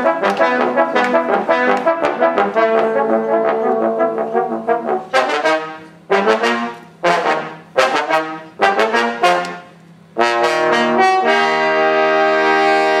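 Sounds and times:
trombone quartet playing chords: 0.0 - 13.0.

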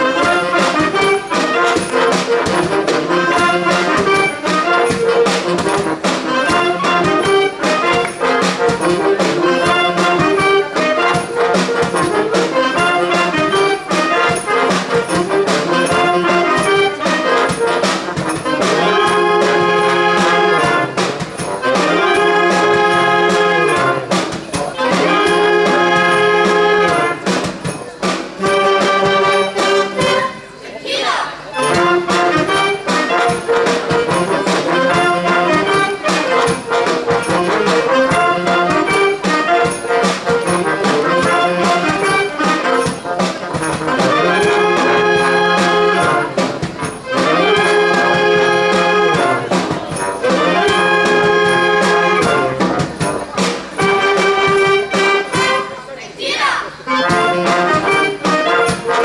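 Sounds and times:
steady drum beat: 0.0 - 30.6, 31.6 - 55.8, 56.7 - 59.0
wind band playing: 0.0 - 59.0.

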